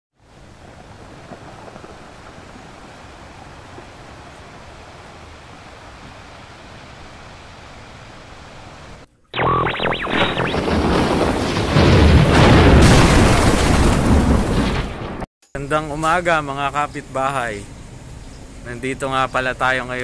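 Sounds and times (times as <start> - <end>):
boom-like intro sound effect: 9.4 - 13.0.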